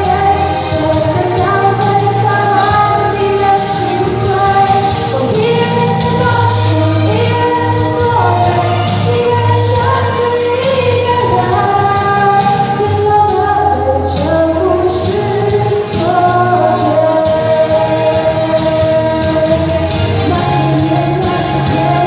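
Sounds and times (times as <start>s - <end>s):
instrumental accompaniment: 0.0s - 22.0s
woman singing pop ballad: 0.0s - 22.0s.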